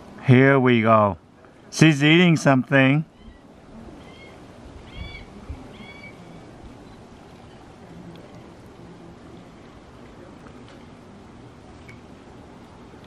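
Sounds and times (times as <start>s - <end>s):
outdoor background hum: 0.0s - 13.0s.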